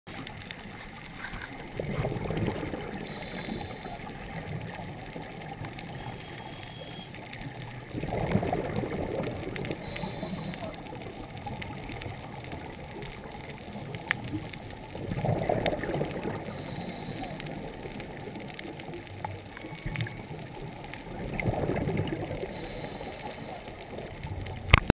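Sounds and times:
faint clicks: 0.1s - 24.9s
muffled water gurgling: 0.1s - 24.9s.

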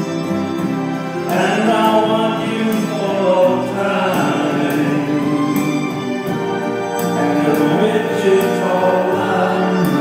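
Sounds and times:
sustained backing music: 0.0s - 10.0s
man singing into microphone: 1.3s - 6.3s, 7.2s - 10.0s.

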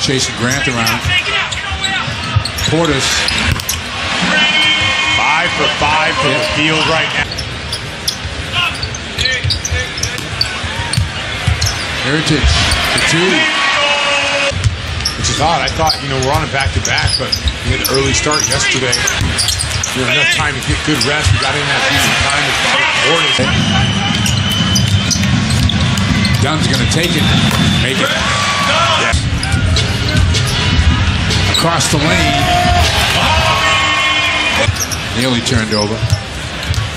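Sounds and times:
arena crowd noise: 0.0s - 36.9s
sneakers squeaking on floor: 0.4s - 3.9s, 6.2s - 13.2s, 14.5s - 28.3s, 29.0s - 32.6s, 34.6s - 36.9s
basketball bouncing on hardwood: 27.4s - 27.8s.

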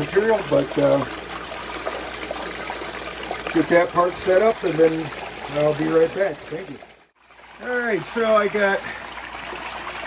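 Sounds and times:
water running down metal sluice: 0.0s - 10.0s
water splashing into tub: 0.0s - 10.0s.

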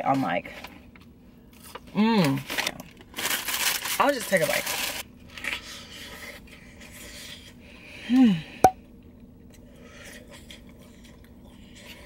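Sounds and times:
person chewing a burger: 5.1s - 8.0s, 8.9s - 12.0s.

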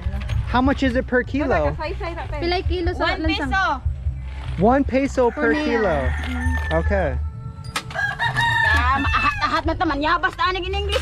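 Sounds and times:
rooster crowing: 5.2s - 9.6s.

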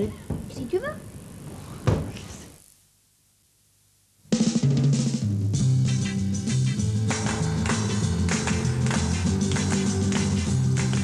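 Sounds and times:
thump: 1.8s - 2.2s
drum kit and bass playing: 4.3s - 11.0s.

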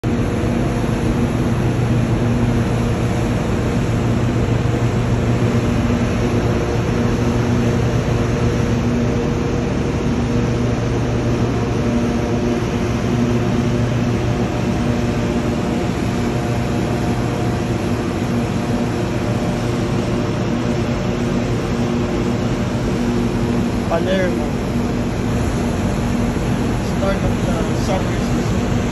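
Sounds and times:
propeller-churned water rushing: 0.0s - 28.9s
ship machinery drone: 0.0s - 28.9s.

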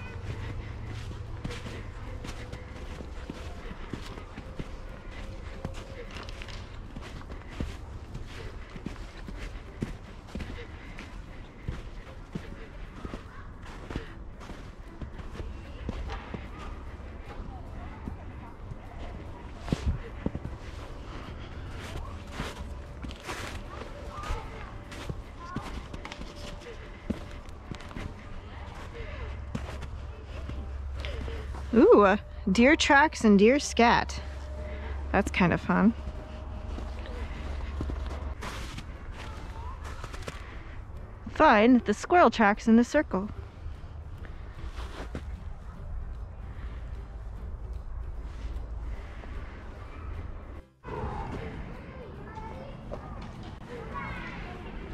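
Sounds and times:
faint distant voices: 0.0s - 32.5s
footsteps crunching in snow: 0.0s - 42.3s, 43.0s - 46.8s.

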